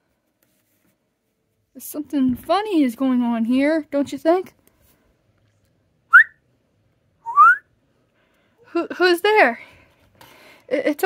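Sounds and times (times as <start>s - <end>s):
person whistling rising note: 6.1s - 6.4s, 7.2s - 7.6s.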